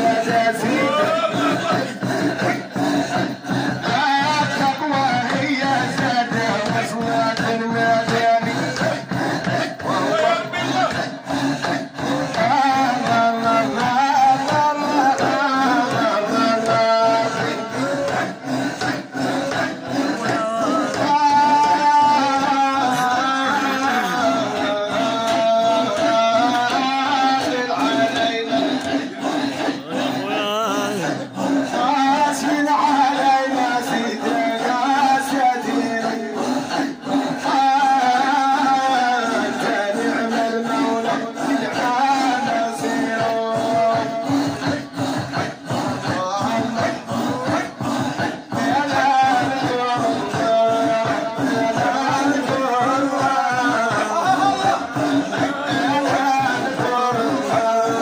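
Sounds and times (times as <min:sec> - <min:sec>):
group singing faintly: 0:00.0 - 0:58.0
men chanting together: 0:00.0 - 0:58.0.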